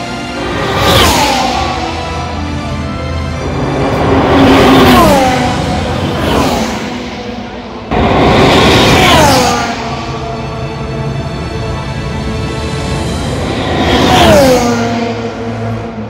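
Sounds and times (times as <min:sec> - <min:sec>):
racing car engines passing: 0:00.0 - 0:16.0.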